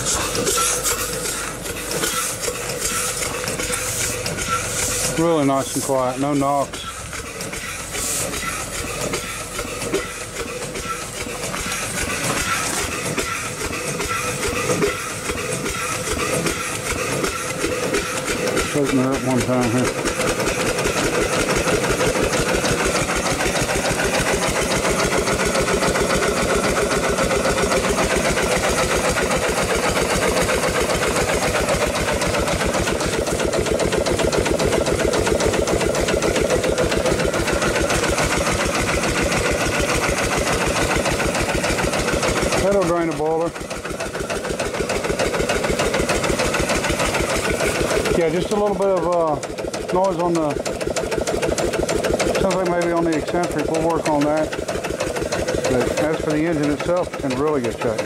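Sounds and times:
steam hiss: 0.0 - 5.9, 6.7 - 10.0
engine knocking: 0.0 - 58.0
steam engine piston beat: 0.0 - 58.0.

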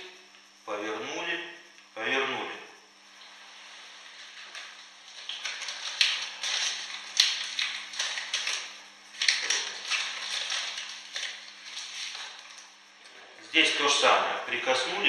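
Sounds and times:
rustling: 3.2 - 12.8.

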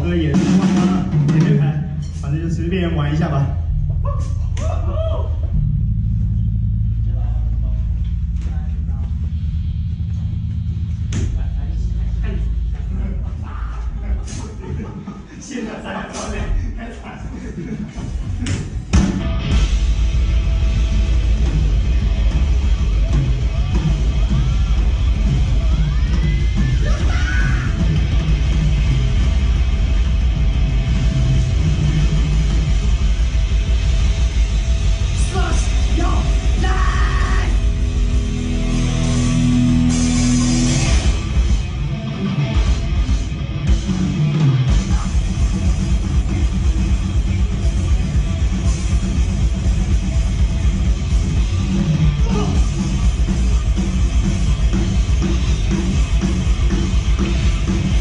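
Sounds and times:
pounding drums: 0.0 - 2.1
low bass droning rumble: 0.0 - 15.4, 16.3 - 58.0
heavily distorted low instruments: 0.0 - 58.0
person calling out: 35.4 - 37.6, 52.2 - 52.7.

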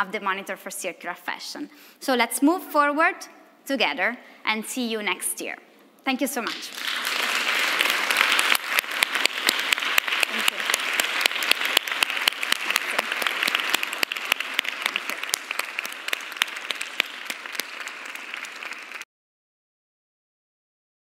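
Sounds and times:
small audience applauding: 6.5 - 19.1.

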